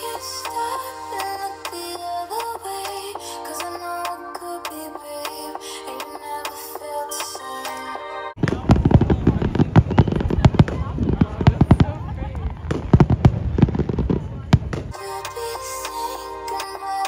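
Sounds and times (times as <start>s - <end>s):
background music: 0.0s - 8.4s, 14.9s - 17.0s
fireworks bangs and crackling: 8.4s - 15.0s.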